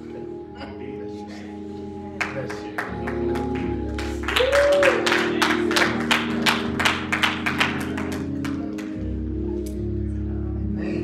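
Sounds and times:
church music chords: 0.0 - 11.0
hand claps: 2.2 - 9.0.

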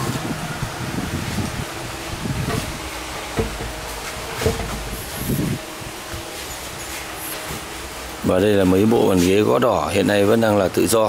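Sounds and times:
faint motor hum: 0.0 - 9.9
muffled knocks: 2.4 - 5.6.

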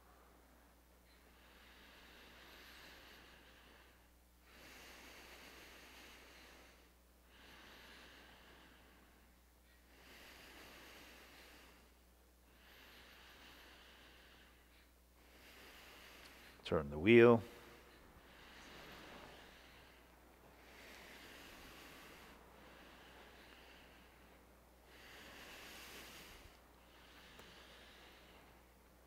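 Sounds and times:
low electrical hum: 0.0 - 29.0
slow breathing: 0.0 - 29.0.

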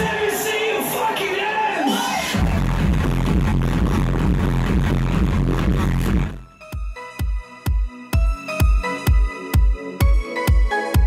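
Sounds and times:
loud electronic dance music: 0.0 - 11.0.

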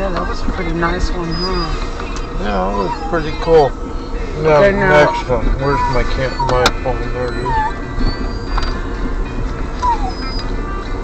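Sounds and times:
car radio music: 0.0 - 11.0
engine and road rumble: 0.0 - 11.0.

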